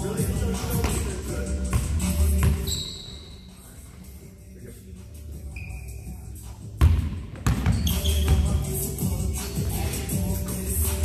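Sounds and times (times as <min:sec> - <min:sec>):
background music: 0:00.0 - 0:11.0
basketball bouncing on gym floor: 0:06.8 - 0:08.6.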